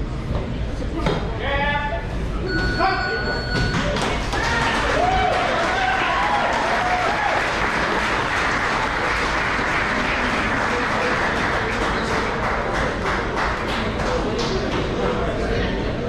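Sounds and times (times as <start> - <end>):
spectators applauding: 3.9 - 14.9.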